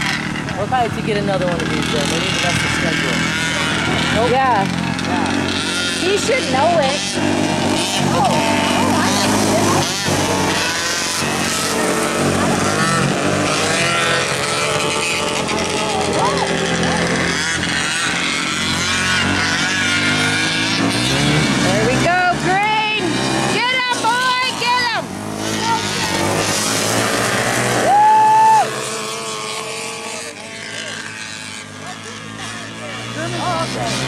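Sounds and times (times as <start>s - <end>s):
kart engines racing: 0.0s - 34.0s.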